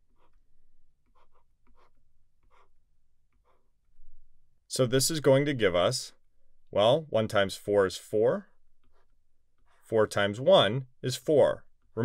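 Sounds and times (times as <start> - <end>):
writing scratching on board: 0.1 - 0.4, 1.0 - 3.7.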